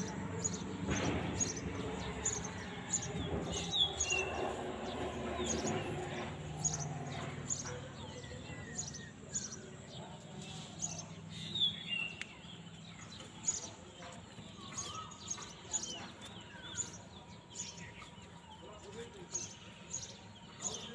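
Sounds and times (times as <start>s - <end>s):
small birds chirping: 0.0s - 20.9s.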